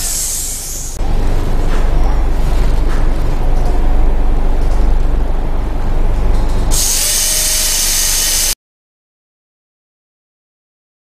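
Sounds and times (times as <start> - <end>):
dental drill whine and hiss: 0.0 - 1.0, 6.7 - 8.6.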